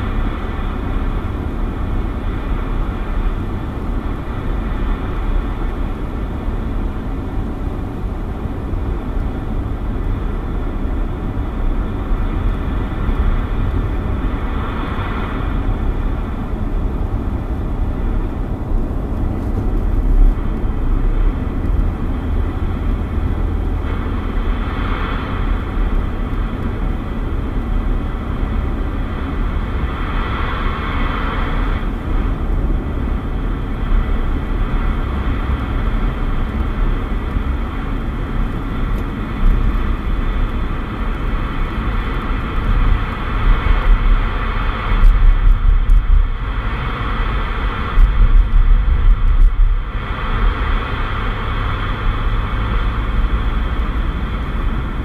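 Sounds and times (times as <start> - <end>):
road and engine noise in car: 0.0 - 55.0.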